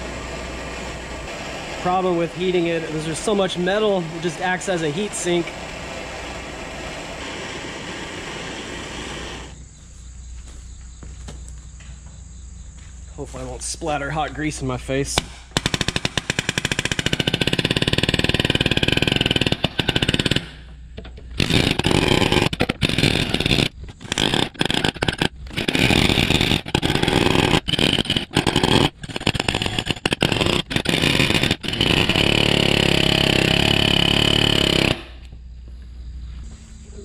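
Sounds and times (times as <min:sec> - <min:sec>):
palm nailer hammering metal: 0:00.6 - 0:09.6, 0:15.1 - 0:35.3.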